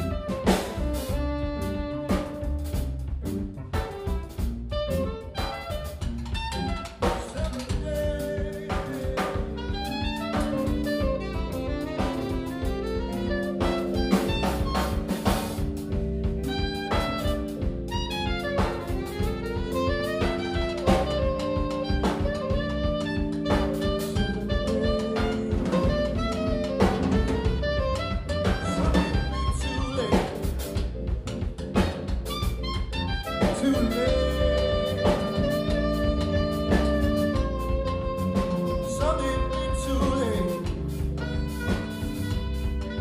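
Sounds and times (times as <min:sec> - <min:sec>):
drum kit: 0:00.0 - 0:43.0
electric bass: 0:00.0 - 0:43.0
keyboard chords: 0:00.0 - 0:43.0
saxophone melody: 0:00.0 - 0:43.0.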